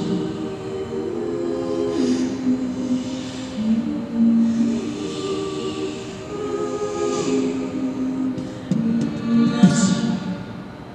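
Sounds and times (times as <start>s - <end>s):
women singing close harmony: 0.0s - 10.7s.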